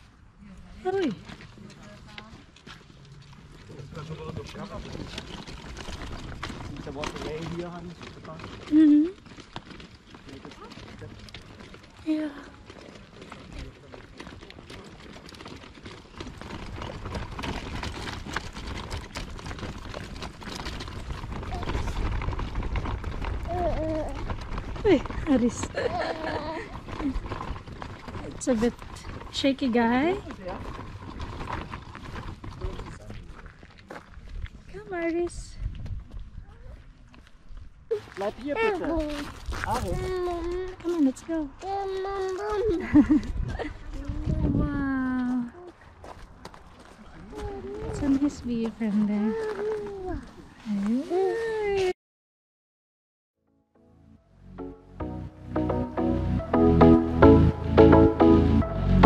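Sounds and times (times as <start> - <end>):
footsteps on cobbled path: 0.0 - 52.0.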